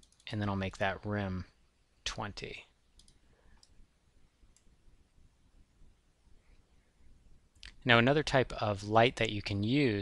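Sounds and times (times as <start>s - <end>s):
computer mouse clicks: 0.0s - 0.3s, 3.0s - 3.8s, 4.5s - 4.7s.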